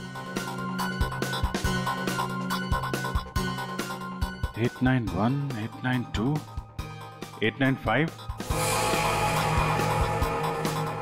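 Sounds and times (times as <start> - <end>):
low beats: 8.4 - 11.0
sustained held tones: 8.4 - 11.0.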